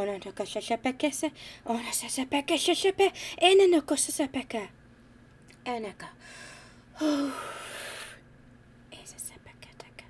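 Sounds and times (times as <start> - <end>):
woman whispering: 8.9 - 10.0.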